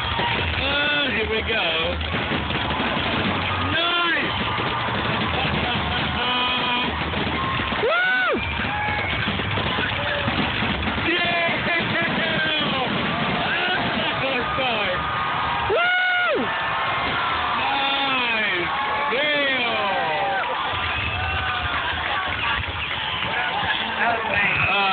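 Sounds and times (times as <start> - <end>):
spectators whooping and shouting: 0.0 - 1.6, 2.3 - 24.9
fireworks bursting with rumble: 0.0 - 24.9.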